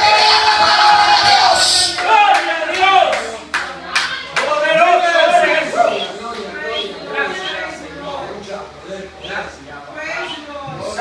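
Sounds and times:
rhythmic hand clapping: 0:00.0 - 0:05.1.

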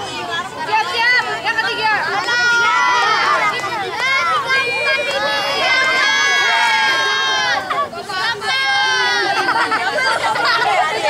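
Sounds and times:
children shouting: 0:00.0 - 0:11.0.

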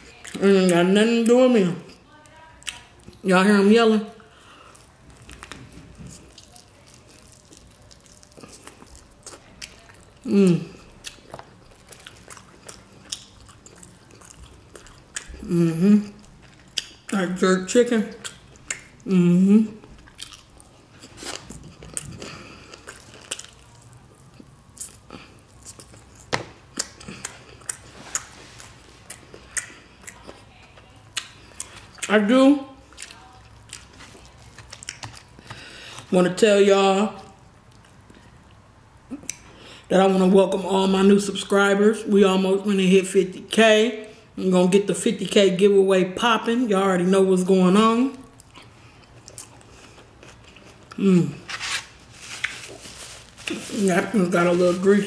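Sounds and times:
chewing and biting: 0:04.6 - 0:15.5, 0:19.8 - 0:32.1, 0:32.8 - 0:36.1, 0:48.4 - 0:51.0, 0:51.6 - 0:53.8.

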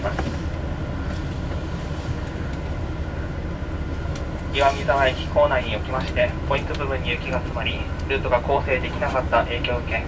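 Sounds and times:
train rumble inside cabin: 0:00.0 - 0:10.0.

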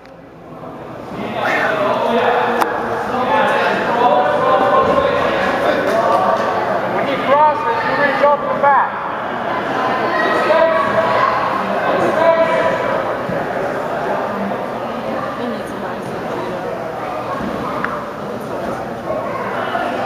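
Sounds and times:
indistinct voices calling out: 0:01.1 - 0:18.2
loud shouts: 0:07.1 - 0:13.2.

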